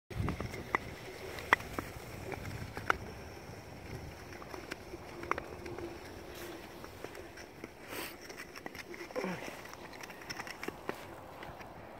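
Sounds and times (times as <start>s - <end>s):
sharp skate clicks: 0.1s - 11.9s.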